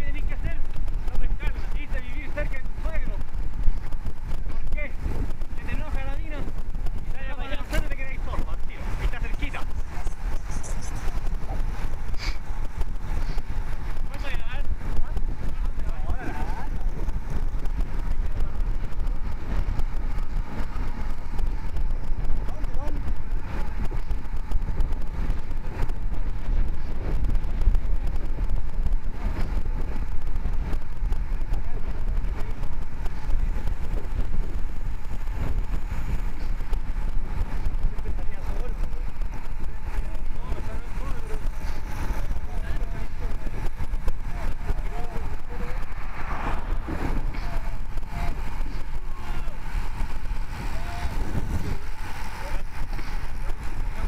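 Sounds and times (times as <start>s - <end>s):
tyre and road noise: 0.0s - 54.0s
wind buffeting microphone: 0.0s - 54.0s.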